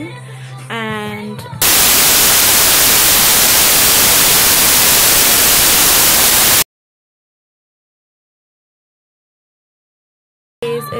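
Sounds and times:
static noise hiss: 0:01.6 - 0:06.6.

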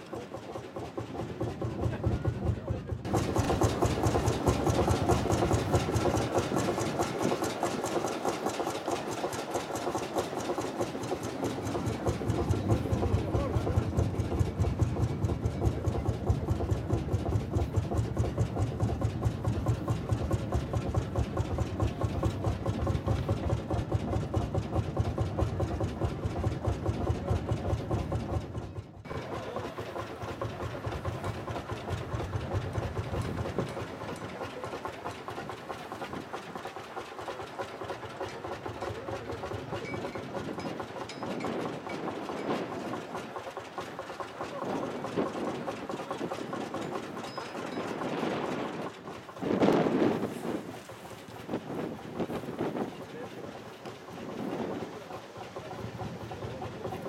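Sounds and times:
diesel tractor engine idling: 0:00.0 - 0:57.0.

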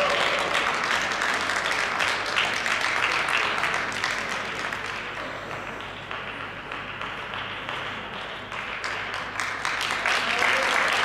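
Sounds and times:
audience applauding: 0:00.0 - 0:11.0.

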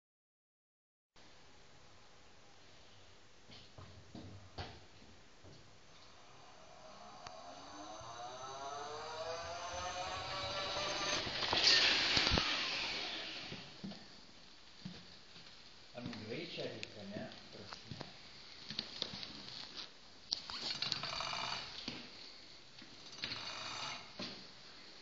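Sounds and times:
electric scooter motor whining: 0:05.9 - 0:13.9, 0:20.5 - 0:22.0, 0:23.0 - 0:24.3.

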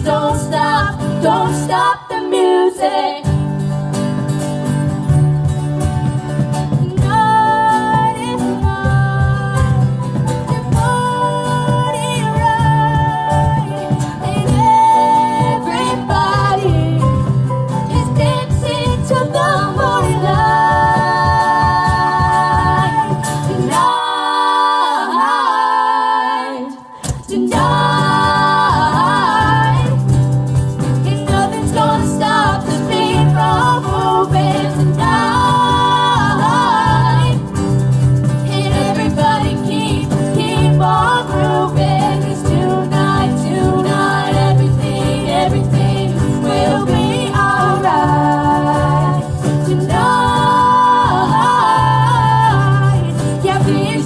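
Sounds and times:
cajon beat: 0:00.0 - 0:01.9, 0:03.3 - 0:24.4, 0:27.0 - 0:54.0
lead and harmony vocals: 0:00.0 - 0:03.7, 0:06.8 - 0:54.0
live pop band playing: 0:00.0 - 0:54.0.

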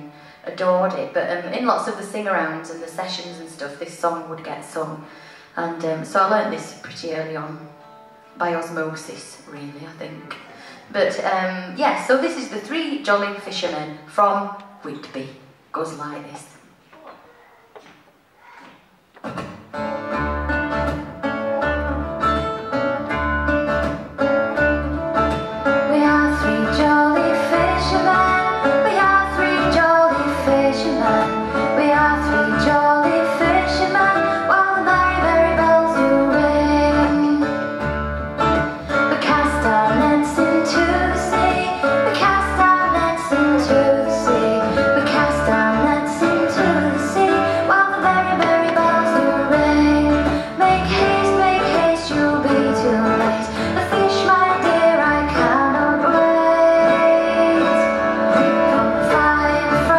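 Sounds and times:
folk band playing: 0:19.3 - 0:59.9
double bass pulsing: 0:19.9 - 0:59.9
woman singing: 0:25.8 - 0:37.6, 0:39.0 - 0:59.9.

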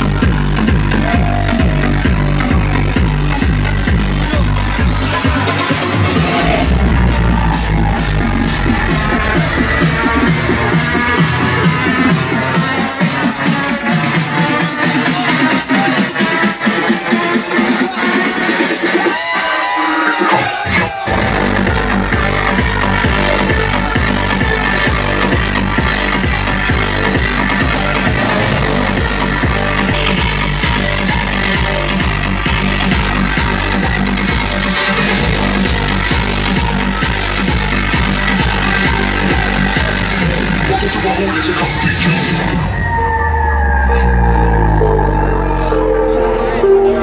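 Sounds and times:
electronic dance music: 0:00.0 - 0:47.0.

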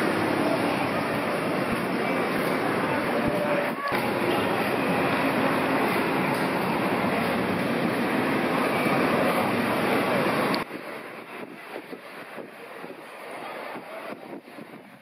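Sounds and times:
loud street traffic noise: 0:00.0 - 0:15.0.

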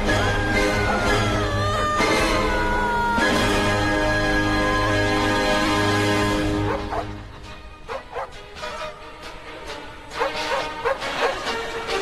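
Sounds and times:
orchestral film score: 0:00.0 - 0:12.0
dog yapping: 0:06.7 - 0:07.1, 0:10.2 - 0:11.5.

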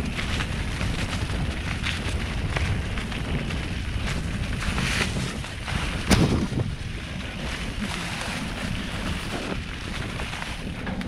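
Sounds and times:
bike tyres rumbling on dirt: 0:00.0 - 0:11.0
wind buffeting microphone: 0:00.0 - 0:11.0.

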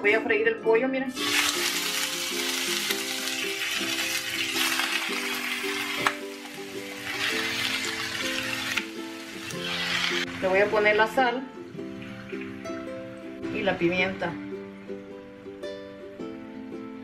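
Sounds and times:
background music: 0:00.0 - 0:17.0
chicken sizzling in hot oil: 0:01.1 - 0:11.0.

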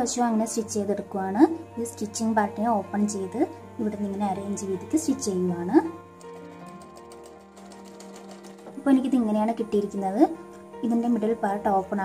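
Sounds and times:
soft background music: 0:00.0 - 0:12.0
sewing machine stitching: 0:06.2 - 0:09.1.

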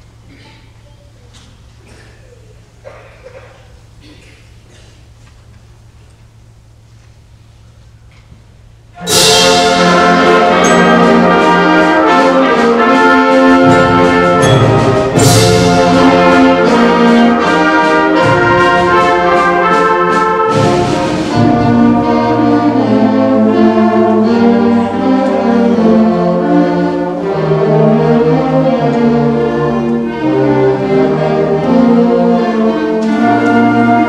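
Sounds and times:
concert band brass fanfare: 0:09.0 - 0:28.9, 0:29.7 - 0:34.0.

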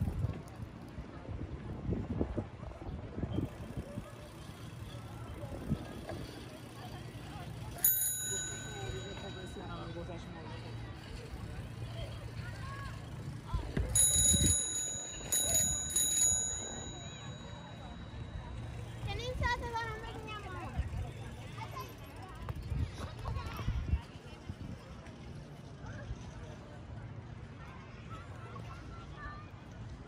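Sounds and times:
faint voices: 0:00.0 - 0:30.0
small metal bell ringing: 0:07.8 - 0:10.6, 0:13.9 - 0:19.0.

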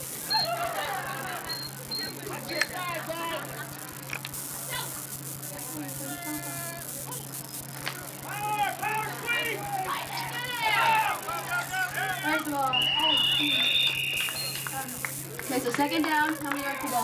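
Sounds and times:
steady low hum: 0:00.0 - 0:17.0
people shouting: 0:00.3 - 0:03.8, 0:06.0 - 0:14.3
long held call: 0:05.6 - 0:17.0.

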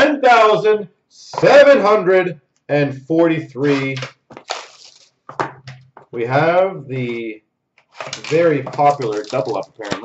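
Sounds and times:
card packaging rustling: 0:03.6 - 0:05.4, 0:07.9 - 0:10.0.

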